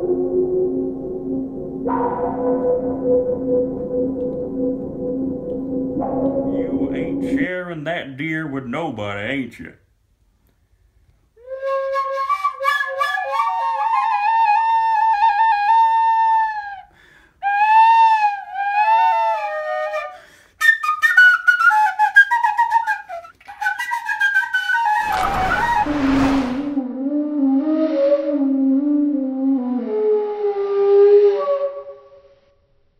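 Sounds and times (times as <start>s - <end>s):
bamboo flute melody: 0.0s - 7.4s, 11.4s - 25.9s, 26.8s - 32.3s.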